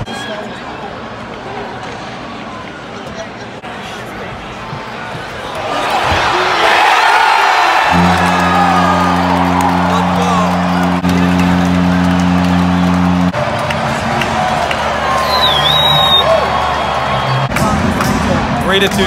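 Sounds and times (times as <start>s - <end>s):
crowd cheering: 0.0s - 19.0s
arena goal horn: 7.8s - 14.0s
arena music: 7.9s - 19.0s.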